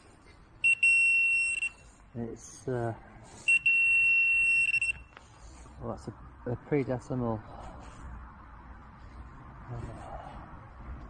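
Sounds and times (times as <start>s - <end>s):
metal detector high-pitched tone: 0.6s - 1.9s, 3.4s - 5.2s
metal detector quick beeps: 0.6s - 1.9s, 3.4s - 5.2s.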